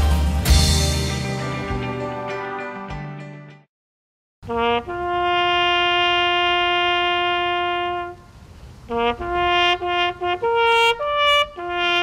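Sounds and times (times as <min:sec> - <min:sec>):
bugle notes: 0:04.5 - 0:08.2, 0:08.9 - 0:12.0.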